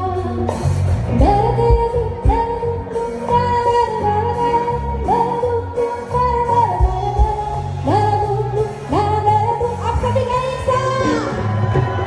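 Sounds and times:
woman singing: 0.0 - 11.4.

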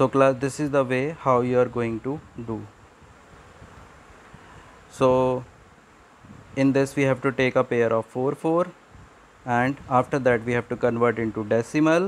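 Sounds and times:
man speaking: 0.0 - 2.8, 4.9 - 5.5, 6.6 - 8.8, 9.4 - 12.0
faint room hiss: 0.0 - 12.0.

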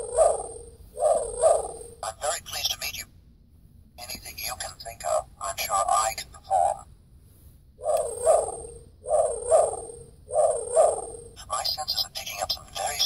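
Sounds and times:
voice clip: 2.0 - 3.2, 4.0 - 6.9, 11.4 - 13.0.

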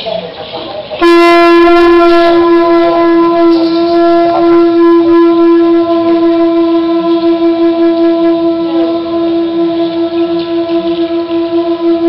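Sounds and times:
conch shell trumpet blown: 1.0 - 12.0.

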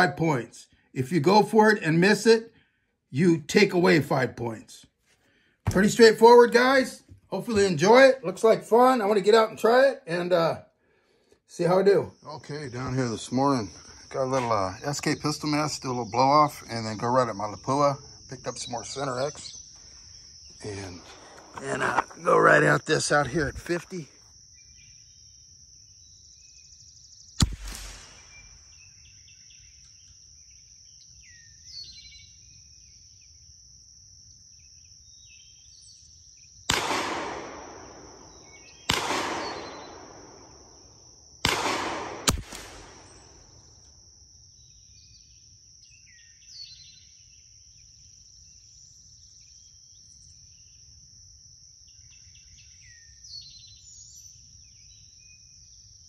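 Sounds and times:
high insect drone: 5.3 - 56.0
faint bird chirps: 24.2 - 33.4, 34.6 - 36.7, 37.7 - 40.4, 44.5 - 50.9, 51.8 - 56.0
rifle shots with echo: 27.4 - 28.8, 36.7 - 40.5, 41.4 - 43.5.

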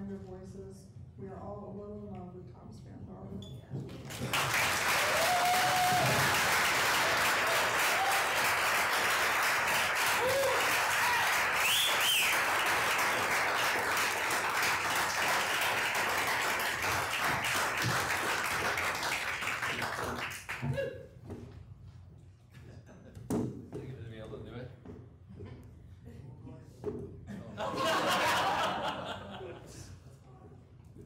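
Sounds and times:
audience applauding: 4.0 - 20.7
cheers and whoops: 4.8 - 8.6, 10.0 - 12.5.

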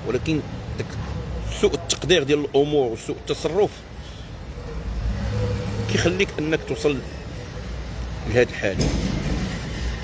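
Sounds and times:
road noise: 0.0 - 10.0
vehicle engine hum: 0.0 - 10.0.

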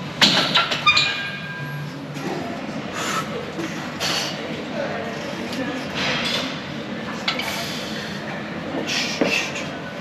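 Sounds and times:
gym room noise: 0.0 - 10.0.

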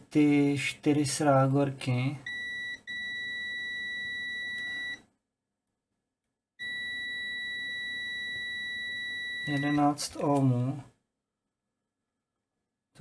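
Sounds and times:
multimeter continuity beeps: 2.2 - 5.0, 6.6 - 10.0.

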